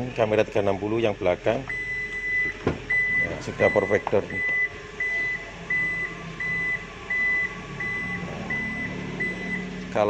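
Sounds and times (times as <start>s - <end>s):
low motor hum: 0.0s - 10.0s
short high warning beeps: 1.7s - 9.7s.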